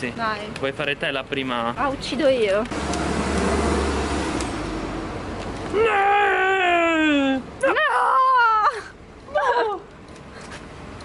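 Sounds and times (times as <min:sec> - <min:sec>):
street traffic noise: 0:00.0 - 0:11.0
passing vehicle engine rumble: 0:01.9 - 0:05.7.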